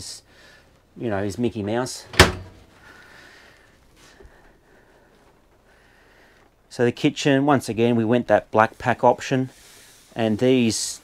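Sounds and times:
microwave door shutting: 2.1s - 2.6s.

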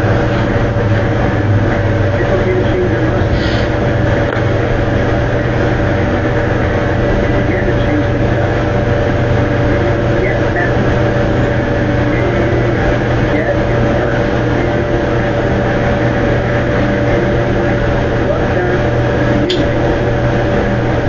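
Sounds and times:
low drone hum and hiss: 0.0s - 21.0s.

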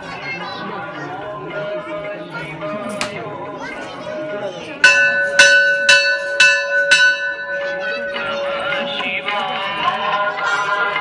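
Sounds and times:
crowd chatter: 0.0s - 11.0s
temple bell ringing: 4.8s - 11.0s.

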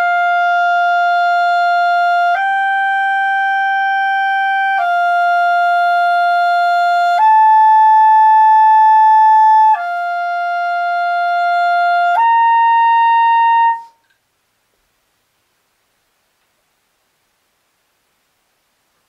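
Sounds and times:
clarinet long held notes: 0.0s - 14.0s.

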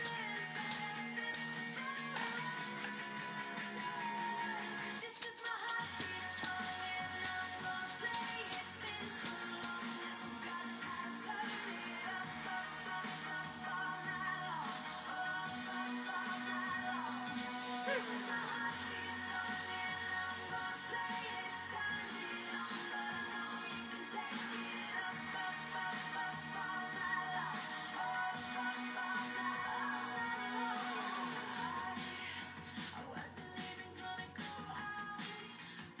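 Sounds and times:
plastic maraca rattling: 0.0s - 1.6s, 4.6s - 9.9s, 12.5s - 13.6s, 14.8s - 15.1s, 17.1s - 19.0s, 23.0s - 23.6s, 24.2s - 25.0s, 27.2s - 27.7s, 30.6s - 32.4s, 33.1s - 34.9s
music playing in room: 0.0s - 36.0s.

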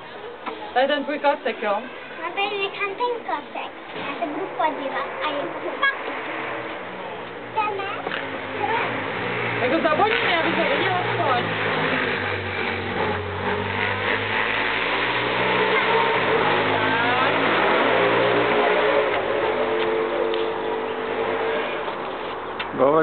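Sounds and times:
engine running: 3.6s - 23.0s.

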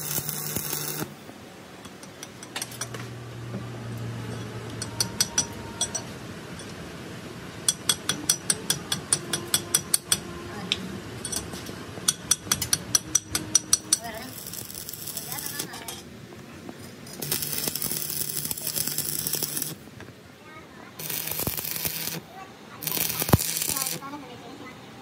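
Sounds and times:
welding arc crackling hiss: 0.0s - 1.2s, 12.0s - 16.0s, 17.0s - 19.8s, 21.0s - 24.1s
metal tool tapping on steel: 4.3s - 6.8s, 7.6s - 10.3s, 11.2s - 14.1s.

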